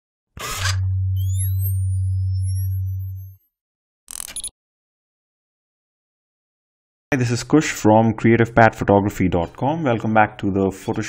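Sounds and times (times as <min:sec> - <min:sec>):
high electronic sweeps: 0:00.8 - 0:03.5.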